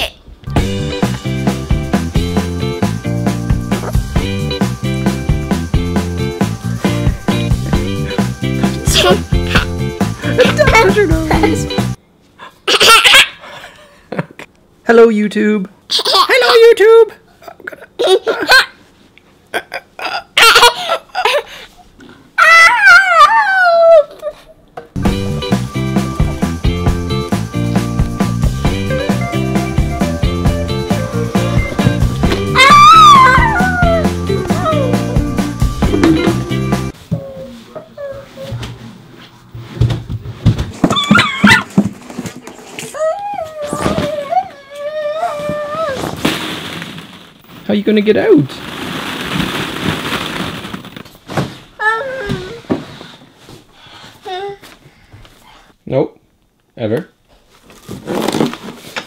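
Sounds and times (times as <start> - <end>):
toddler girl laughing: 8.9 - 11.7, 12.6 - 13.7, 15.9 - 16.6, 17.4 - 18.8, 19.6 - 21.5
toddler high-pitched squeal: 32.6 - 35.0, 42.9 - 46.1
toddler squealing: 32.6 - 35.1
plastic balls clattering: 46.0 - 47.8, 48.4 - 51.3.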